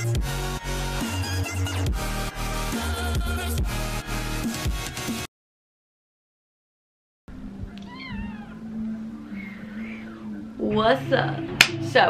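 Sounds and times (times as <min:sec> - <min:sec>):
cat meowing: 0:07.7 - 0:08.7.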